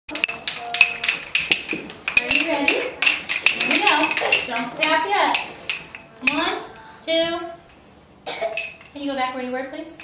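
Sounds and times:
rhythm sticks clicking: 0.1s - 6.9s.

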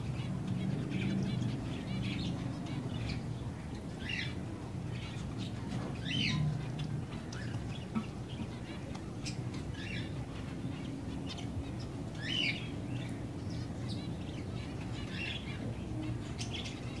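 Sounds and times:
sparrows chirping: 0.0s - 17.0s.

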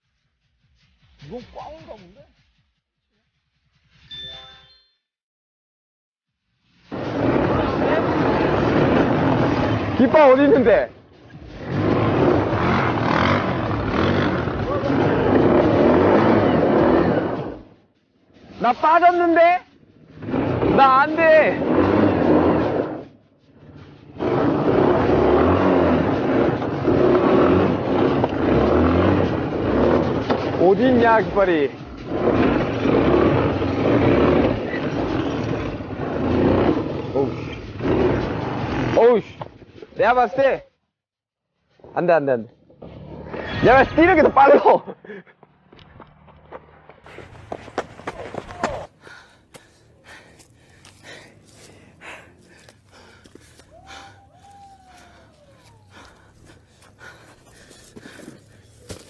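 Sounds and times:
quad bike engine revving: 6.9s - 17.6s, 20.1s - 23.0s, 23.8s - 39.5s, 42.7s - 44.4s
vehicle rattling over rocks: 24.2s - 39.8s, 45.4s - 53.5s.

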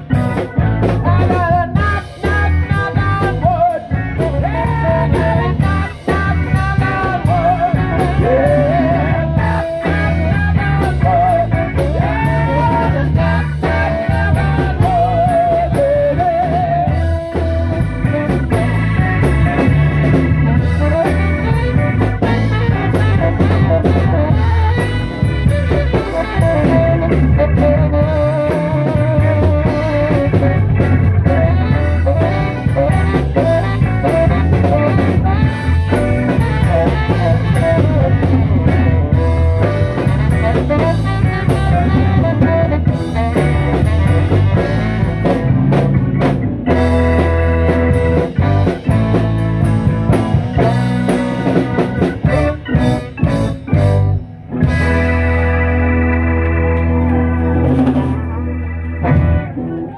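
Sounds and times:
bass: 0.0s - 59.9s
drum kit: 0.0s - 59.9s
electric guitar: 0.0s - 59.9s
saxophone: 0.0s - 59.9s.

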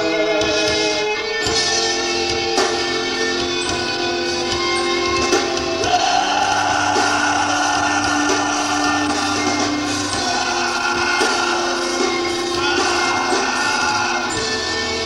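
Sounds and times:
drums: 0.0s - 15.0s
electric guitar: 0.0s - 15.0s
man singing into microphone: 5.8s - 15.0s.

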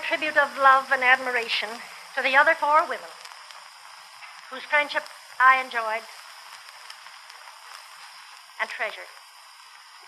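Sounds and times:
faint crackles: 0.0s - 10.0s
recording surface hiss: 0.0s - 10.0s.

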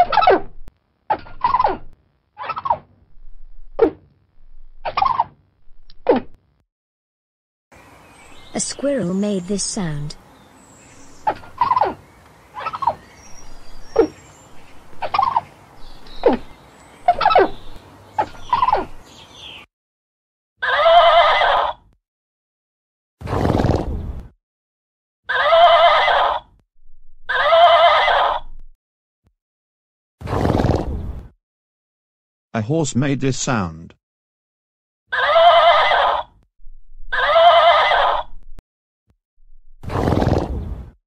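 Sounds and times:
squirrel calls: 10.2s - 19.7s
horse whinnying: 20.6s - 21.8s, 25.3s - 26.5s, 27.3s - 28.5s, 35.1s - 36.3s, 37.1s - 38.4s
horse snorting: 23.2s - 24.0s, 30.2s - 31.0s, 39.8s - 40.7s.

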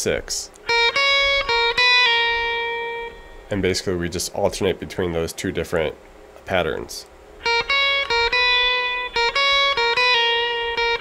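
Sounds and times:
electric guitar single-note lead: 0.6s - 3.7s, 7.4s - 11.0s.

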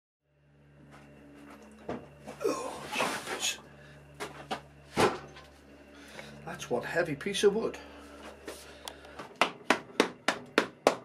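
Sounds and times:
steady low hum: 0.2s - 11.0s.

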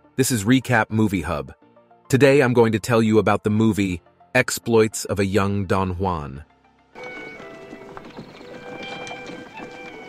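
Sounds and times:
background music with held notes: 0.0s - 10.0s
horse hooves clip-clopping: 7.0s - 10.0s.

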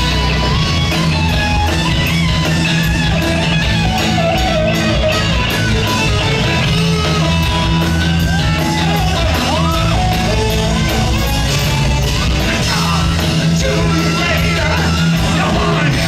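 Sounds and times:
bass guitar: 0.0s - 16.0s
drums and cymbal beat: 0.0s - 16.0s
electric guitars: 0.0s - 16.0s.

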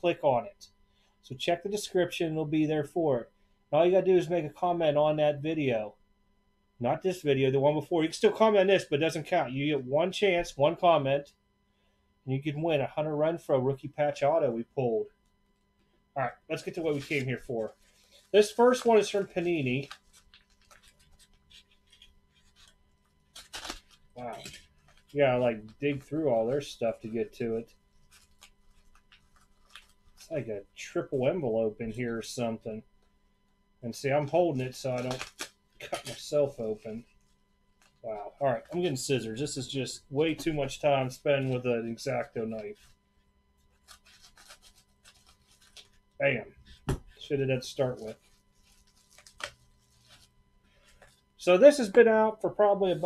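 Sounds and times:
knife cutting paper envelope: 16.5s - 30.4s, 34.5s - 38.0s, 43.7s - 46.0s, 46.6s - 51.2s.

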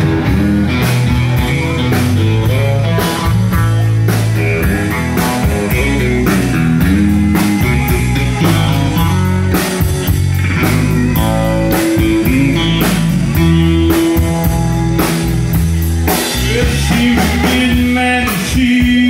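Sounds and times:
bass guitar: 0.0s - 19.0s
drum kit beat: 0.0s - 19.0s
electric guitar: 0.0s - 19.0s.

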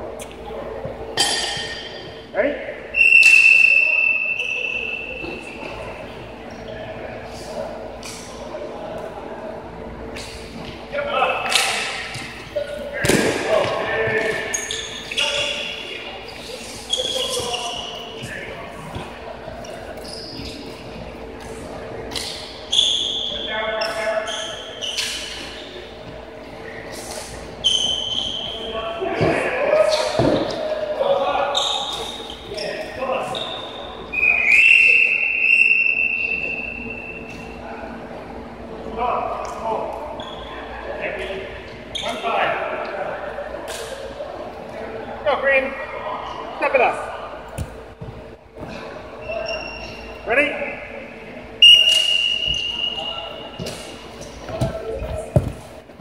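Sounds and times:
players calling and shouting: 0.0s - 56.0s
short high squeaks: 14.3s - 18.2s, 19.6s - 20.8s, 22.1s - 25.9s, 26.9s - 28.7s, 31.5s - 33.9s, 49.2s - 50.2s.

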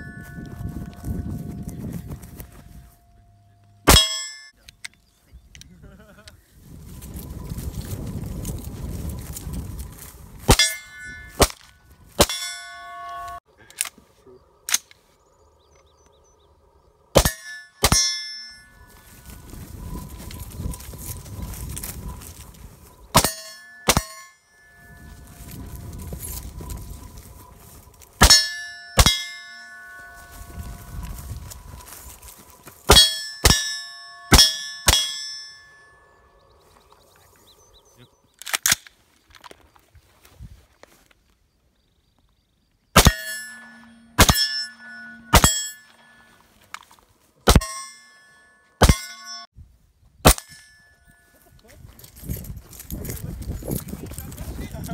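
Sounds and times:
metallic ring of steel target: 0.0s - 1.7s, 3.8s - 4.6s, 10.5s - 13.4s, 17.2s - 19.6s, 23.1s - 26.5s, 28.2s - 31.4s, 32.9s - 36.4s, 43.0s - 46.4s, 47.4s - 49.5s, 50.3s - 51.4s
rustling through tall grass: 6.4s - 10.5s, 18.7s - 23.1s, 24.8s - 28.2s, 30.0s - 32.9s.

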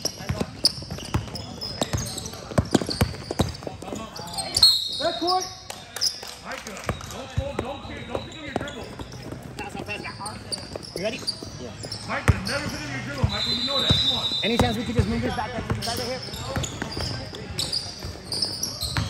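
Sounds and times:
basketball bouncing on court: 0.0s - 4.0s, 6.9s - 10.9s, 11.8s - 19.0s
high squeak or whistle: 4.2s - 5.4s, 13.3s - 14.8s.

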